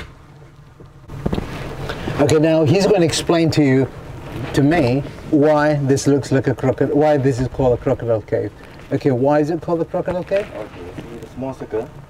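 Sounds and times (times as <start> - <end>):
low hiss: 0.0 - 12.0
motorboat on water: 0.0 - 12.0.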